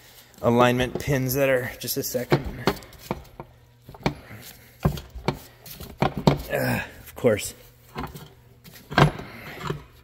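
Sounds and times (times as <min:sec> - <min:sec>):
metal parts knocking and clunking: 0:07.9 - 0:10.0.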